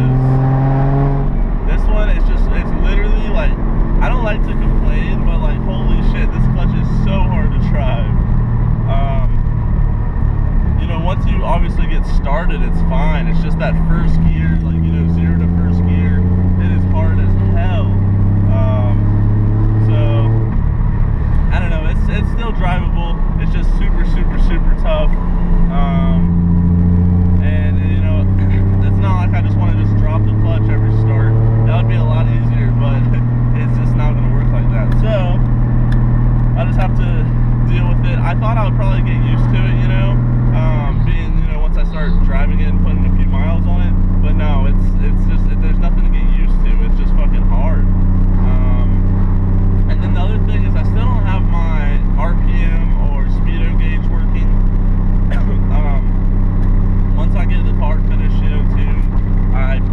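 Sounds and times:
man talking: 0.0s - 0.2s, 1.7s - 8.2s, 8.9s - 9.4s, 10.8s - 19.1s, 19.8s - 20.4s, 21.5s - 26.4s, 27.4s - 35.4s, 36.6s - 49.0s, 49.9s - 54.6s, 55.3s - 56.2s, 57.1s - 59.9s
car engine running: 0.0s - 59.9s.

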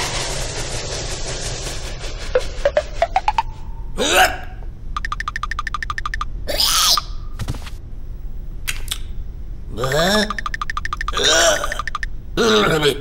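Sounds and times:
fast ticking patter: 5.0s - 6.4s, 10.3s - 12.1s.

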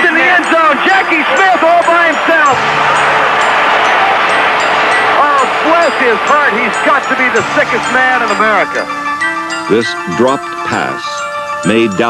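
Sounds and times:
stadium crowd cheering and shouting: 0.0s - 9.0s.

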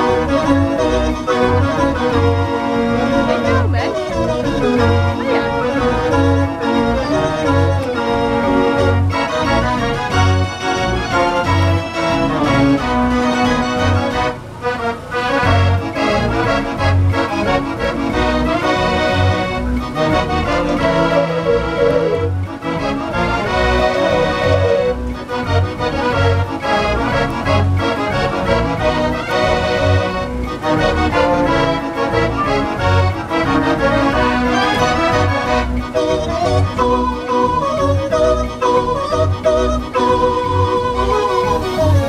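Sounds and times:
dance organ playing a tune: 0.0s - 42.0s.

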